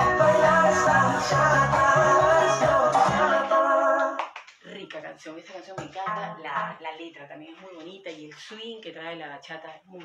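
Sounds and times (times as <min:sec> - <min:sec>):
dance music: 0:00.0 - 0:04.2.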